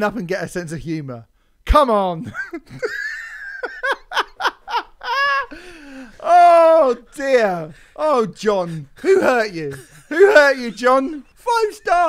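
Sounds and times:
men laughing: 0:02.2 - 0:12.0.

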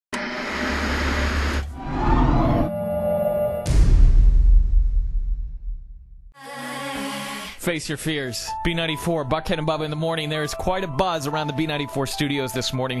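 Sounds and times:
short electronic tone: 0:01.7 - 0:04.0
deep boom: 0:03.4 - 0:06.3.

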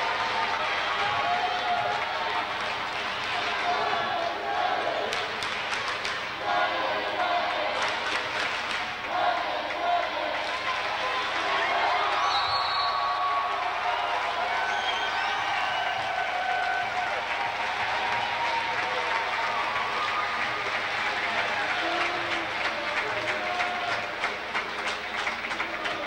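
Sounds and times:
crowd cheering and shouting: 0:00.0 - 0:26.0
fast hand clapping: 0:05.1 - 0:06.3, 0:07.8 - 0:09.1, 0:15.5 - 0:26.0.

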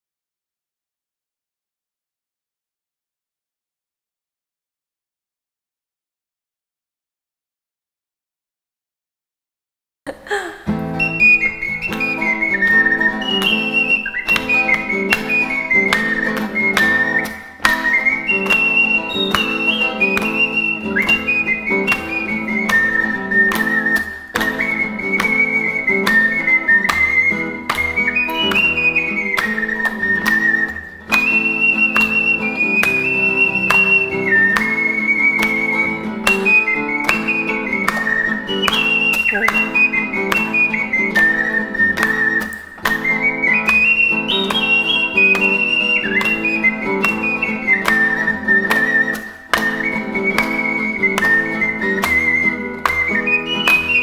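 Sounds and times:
acoustic guitar strumming: 0:10.6 - 0:54.0
ocarina melody: 0:10.6 - 0:54.0.

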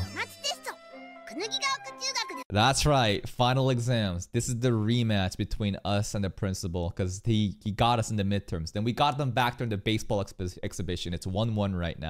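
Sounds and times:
high childlike cartoon voice: 0:00.0 - 0:02.5
light jingly music: 0:00.0 - 0:02.5.

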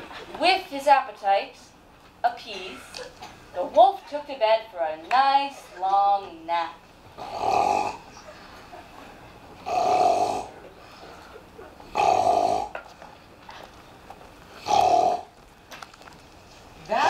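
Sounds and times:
exaggerated loud snoring: 0:07.2 - 0:08.1, 0:09.6 - 0:10.6, 0:11.9 - 0:12.8, 0:14.6 - 0:15.3.

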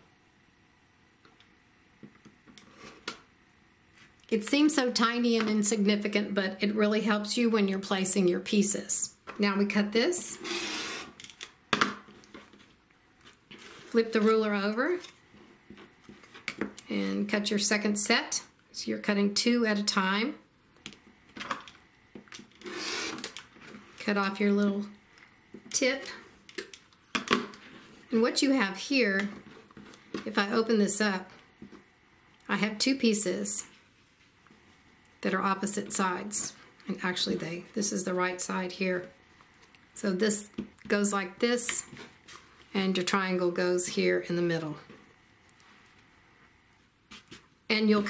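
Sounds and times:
rotary cutter scraping fabric: 0:10.4 - 0:11.2, 0:22.6 - 0:23.4.

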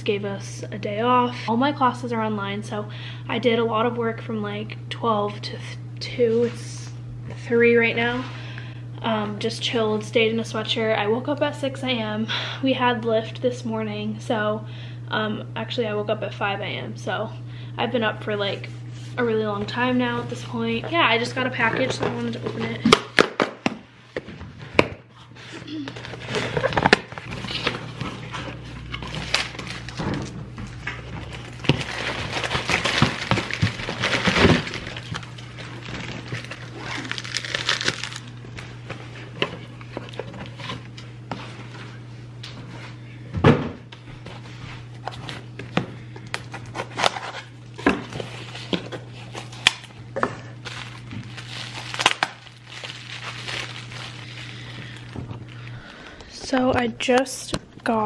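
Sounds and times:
steady low hum: 0:00.0 - 0:58.0
paper and cardboard rustling: 0:31.1 - 0:38.2, 0:46.5 - 0:49.9, 0:50.6 - 0:55.3.

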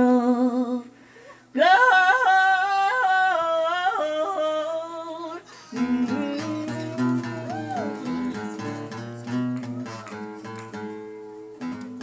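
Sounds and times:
woman singing wordless notes: 0:00.0 - 0:00.9, 0:01.5 - 0:10.5
acoustic guitar strumming: 0:05.6 - 0:12.0.

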